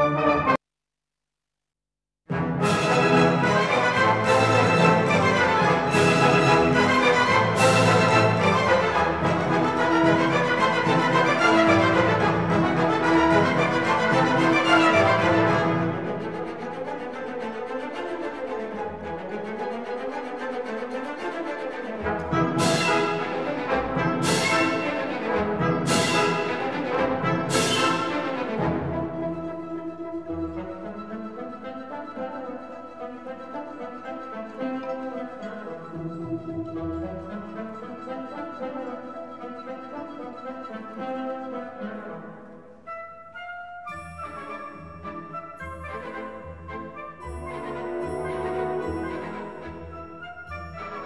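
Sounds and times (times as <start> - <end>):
orchestra with loud brass: 0.0 - 0.6, 2.3 - 51.0.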